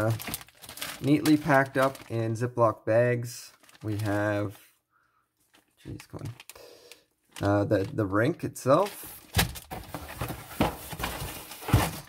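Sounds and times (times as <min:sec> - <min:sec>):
plastic bags rustling: 0:00.0 - 0:02.5, 0:03.2 - 0:04.7, 0:07.2 - 0:12.0.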